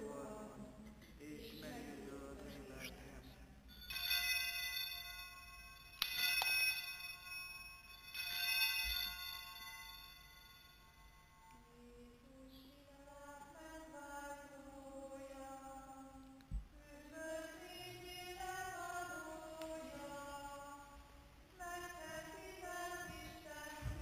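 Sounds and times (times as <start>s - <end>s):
person singing a hymn: 0.0s - 3.6s, 11.4s - 24.0s
altar bell ringing: 3.7s - 11.5s.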